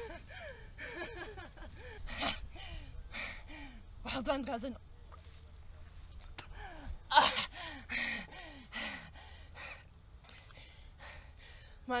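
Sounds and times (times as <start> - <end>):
woman gasping and moaning: 6.5 - 9.2.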